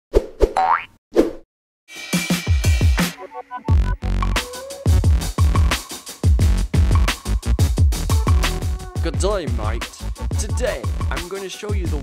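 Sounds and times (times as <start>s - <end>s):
music: 1.9s - 12.0s.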